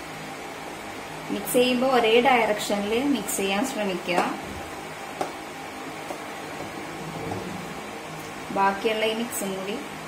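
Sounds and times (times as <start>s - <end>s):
steady room hum: 0.0s - 10.0s
woman speaking: 1.3s - 4.5s, 8.5s - 10.0s.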